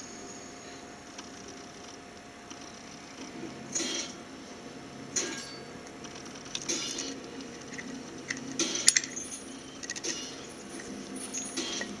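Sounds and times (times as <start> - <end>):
metal gear clicks and clinks: 6.5 - 12.0.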